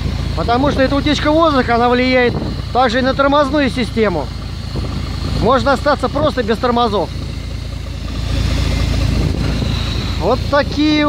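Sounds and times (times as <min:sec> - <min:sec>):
bus engine idling: 0:00.0 - 0:11.0
compressed air hissing: 0:08.1 - 0:10.6.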